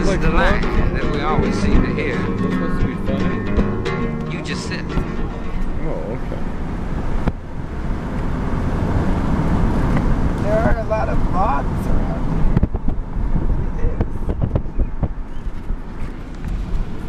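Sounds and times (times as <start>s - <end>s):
person speaking: 0.0s - 3.5s, 4.2s - 6.5s
music playing: 0.0s - 6.5s
engine and road rumble: 0.0s - 17.0s.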